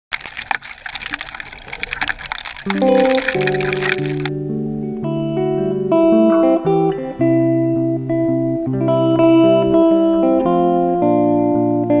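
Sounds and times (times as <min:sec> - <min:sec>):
crackle of small clicks: 0:00.0 - 0:04.3
underwater river rushing: 0:00.0 - 0:04.3.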